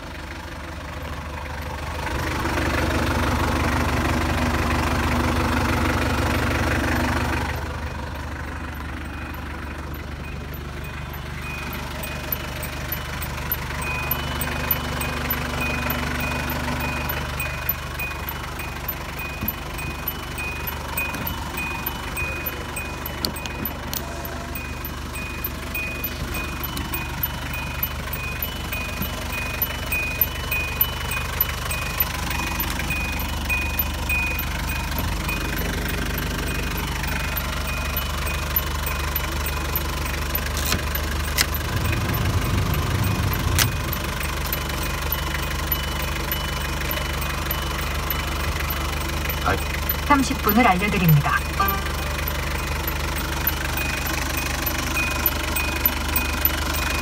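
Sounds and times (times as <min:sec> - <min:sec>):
diesel engine idling: 0:00.0 - 0:57.0
high electronic beeps: 0:09.1 - 0:57.0
sharp clicks: 0:19.2 - 0:24.1, 0:25.2 - 0:48.2.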